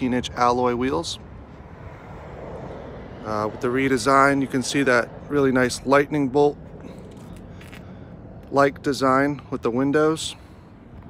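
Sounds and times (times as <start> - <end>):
distant vehicle rumble: 0.0 - 11.0.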